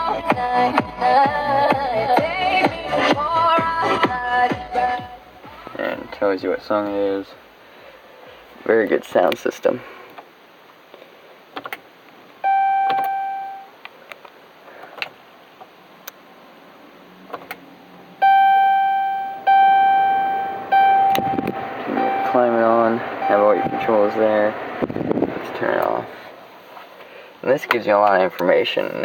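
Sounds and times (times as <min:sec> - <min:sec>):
wavering voice from car audio: 0:00.1 - 0:07.4, 0:19.4 - 0:26.3
dashboard warning chime: 0:12.4 - 0:13.7, 0:18.2 - 0:24.4.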